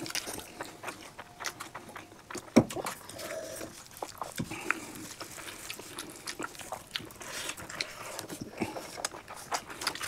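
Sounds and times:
wet chewing clicks: 0.0s - 10.0s.

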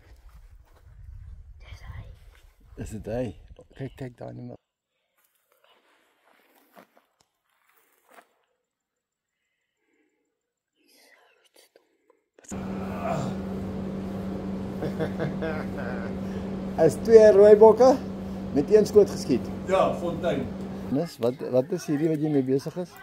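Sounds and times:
faint whispered voices: 1.6s - 2.2s
steady low hum: 12.5s - 21.0s
voices: 12.5s - 23.0s.

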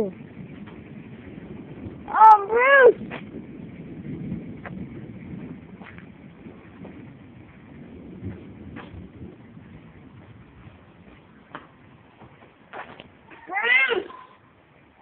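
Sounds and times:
distant thunder rumbling: 0.0s - 14.8s.

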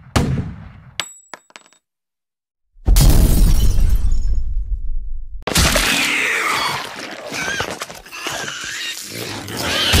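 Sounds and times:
animal-like squealing calls: 6.0s - 10.0s.

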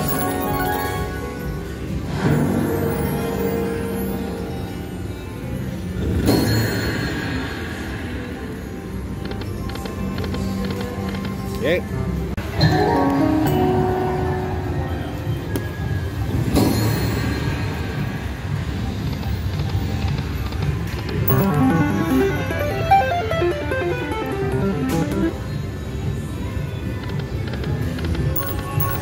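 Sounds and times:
slot machine game music: 0.0s - 4.0s, 21.2s - 25.8s
stepped electronic tones: 21.3s - 25.4s.

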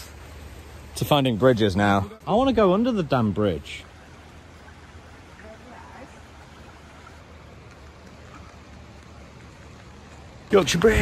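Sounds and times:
shallow river over stones: 0.0s - 11.0s.

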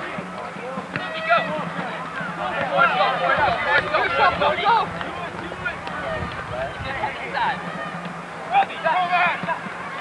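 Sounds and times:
distant players shouting: 0.0s - 10.0s.

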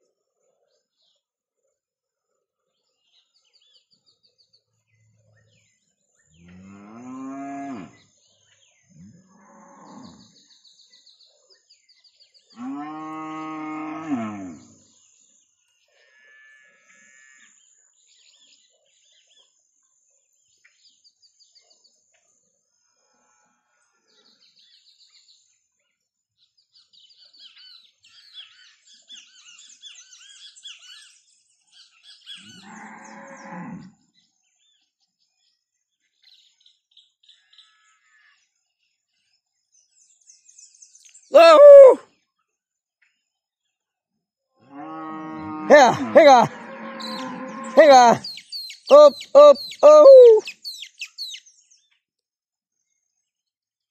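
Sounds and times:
small birds chirping: 26.4s - 37.8s, 44.8s - 52.0s
cattle mooing: 44.8s - 48.2s.

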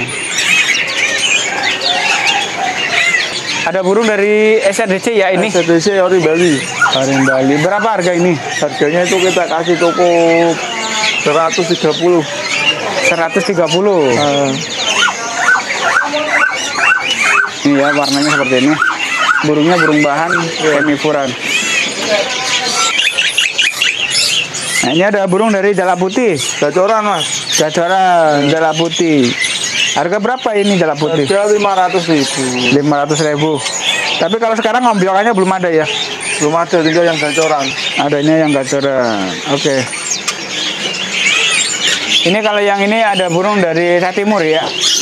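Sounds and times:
songbirds chirping: 0.0s - 45.0s.

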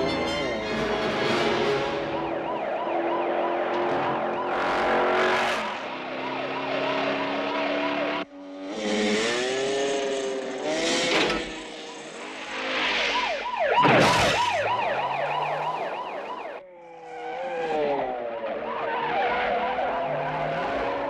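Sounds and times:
police siren yelping: 0.2s - 8.3s, 13.0s - 21.0s.

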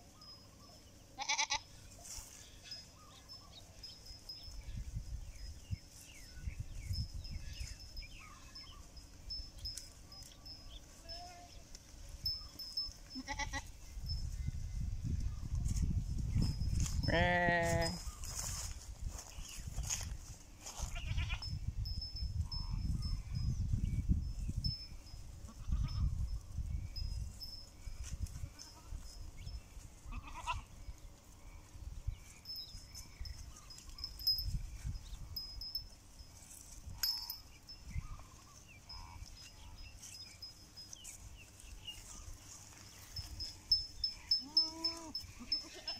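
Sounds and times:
goats bleating: 1.2s - 1.7s, 13.2s - 13.7s, 30.1s - 30.7s, 44.4s - 45.9s.

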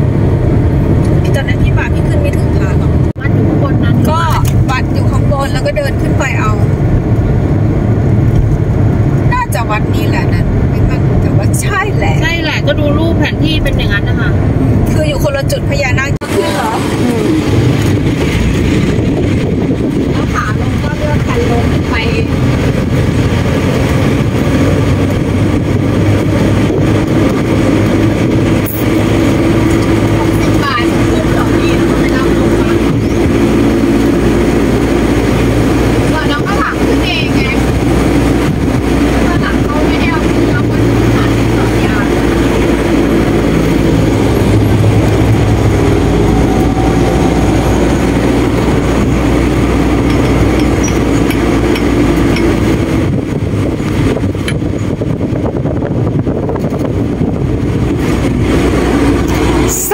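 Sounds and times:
road and wind noise: 0.0s - 59.9s
truck engine running: 0.0s - 59.9s.

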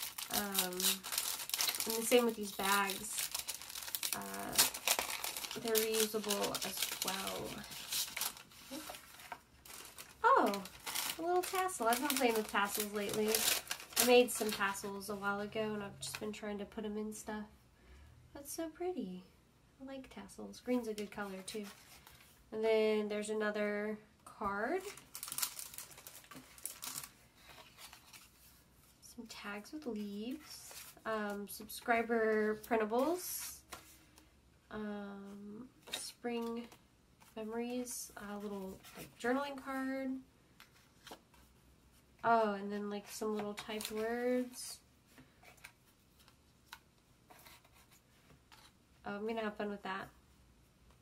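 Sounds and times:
paper and card rustling: 0.0s - 15.4s, 20.8s - 22.3s, 24.7s - 28.7s, 29.5s - 34.2s, 35.8s - 42.0s, 42.8s - 48.8s.

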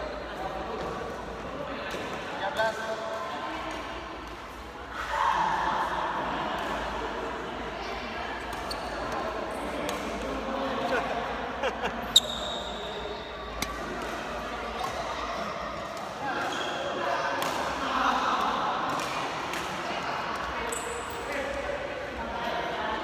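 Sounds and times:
murmur of voices: 0.0s - 23.0s
rackets hitting shuttlecock: 17.3s - 17.8s.

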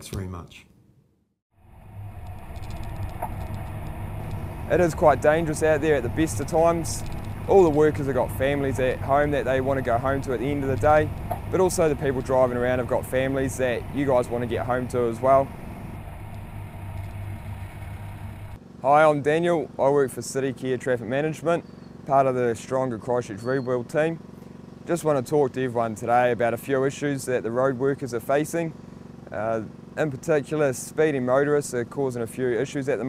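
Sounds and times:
road traffic rumble: 1.6s - 18.9s, 20.4s - 22.6s, 23.4s - 26.8s, 27.8s - 31.2s.

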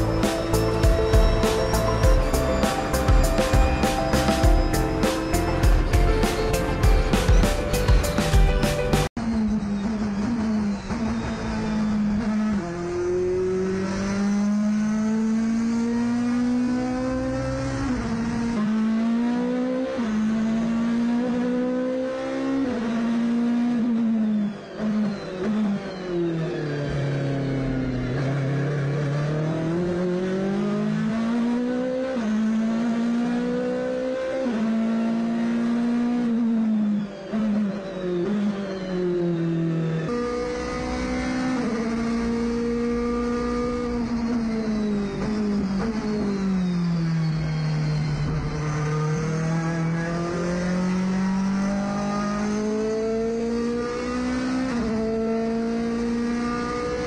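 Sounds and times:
race car engine revving: 26.8s - 46.5s, 47.6s - 57.0s.

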